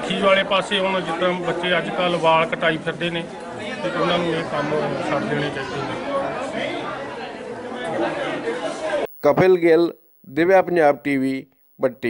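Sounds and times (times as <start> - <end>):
overlapping chatter: 0.0 - 9.1.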